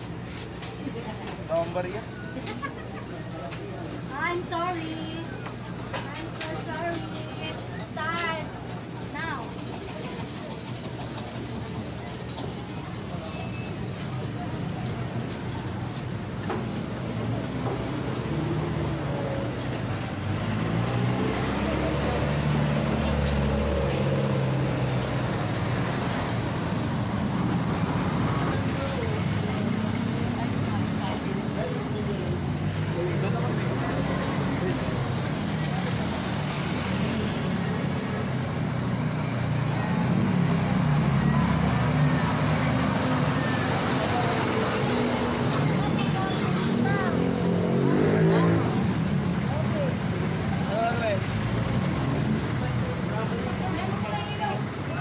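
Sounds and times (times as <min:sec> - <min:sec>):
chatter of passing people: 0:00.0 - 0:55.0
road traffic engines: 0:00.0 - 0:55.0.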